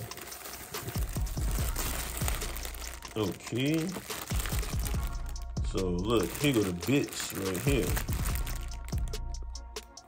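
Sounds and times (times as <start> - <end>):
plastic bag rustling: 0.0 - 9.1
music with deep bass notes: 0.0 - 10.0.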